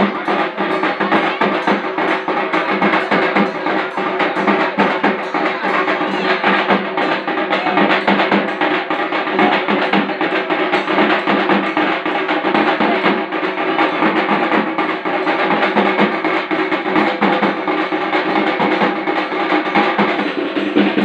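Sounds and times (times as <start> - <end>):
fast drum beat: 0.0 - 21.0.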